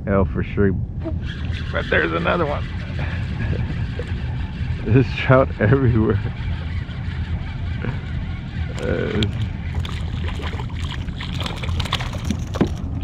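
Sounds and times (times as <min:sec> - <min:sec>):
steady low rumble: 0:00.0 - 0:13.0
fish splashing at water surface: 0:09.7 - 0:12.9.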